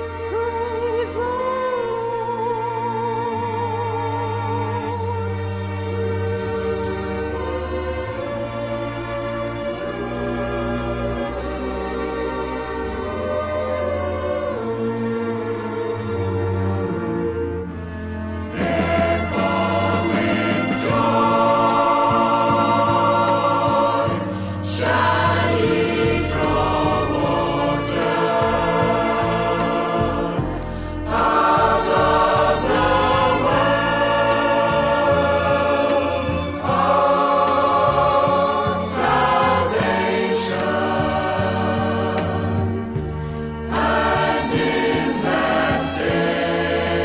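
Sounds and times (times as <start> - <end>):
choir singing: 0.0 - 47.0
instrumental accompaniment: 3.2 - 47.0.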